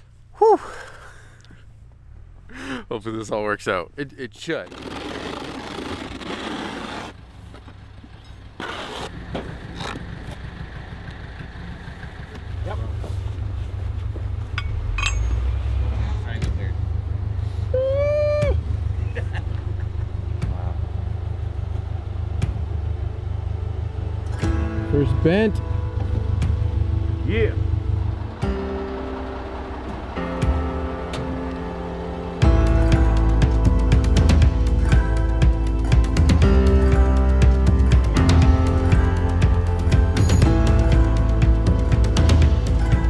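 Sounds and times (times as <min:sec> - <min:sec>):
low steady drone: 0:14.6 - 0:43.0.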